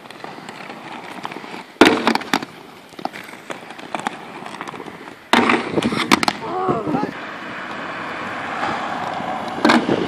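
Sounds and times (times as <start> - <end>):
skate grinding on bench: 0.0 - 7.0
skate wheels rolling on paving: 0.0 - 10.0
skates smacking wooden bench: 0.1 - 6.6, 9.6 - 10.0
skate knocking off bench: 0.5 - 6.4.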